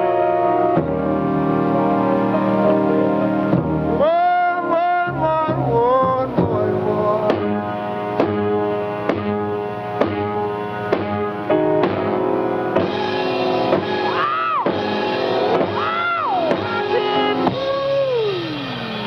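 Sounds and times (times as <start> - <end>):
live soul ballad with piano: 0.0 - 14.5
sliding melodic phrases: 0.0 - 18.4.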